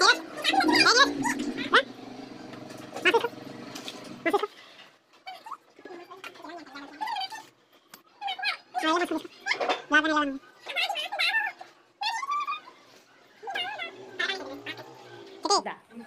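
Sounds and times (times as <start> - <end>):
voices talking: 0.0 - 4.6, 5.3 - 16.0.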